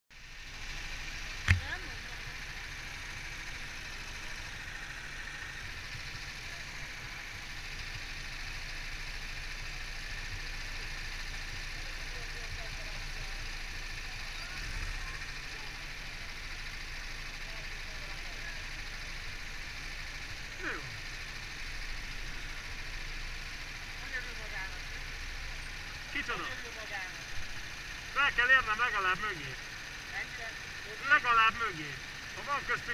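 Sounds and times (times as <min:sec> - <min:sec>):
go-kart engines idling: 0:00.1 - 0:32.9
faint voices: 0:20.4 - 0:21.1.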